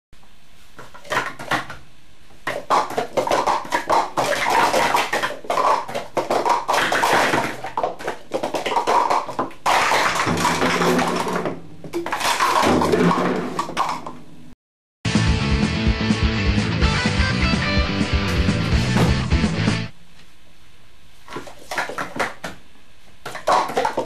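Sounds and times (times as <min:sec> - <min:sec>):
plastic cups clattering on mat: 0:00.8 - 0:01.8, 0:02.4 - 0:14.2, 0:21.3 - 0:22.6, 0:23.2 - 0:24.0.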